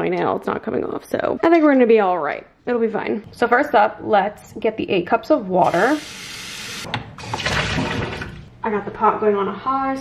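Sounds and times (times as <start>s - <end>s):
water running from a tap: 5.6s - 8.5s.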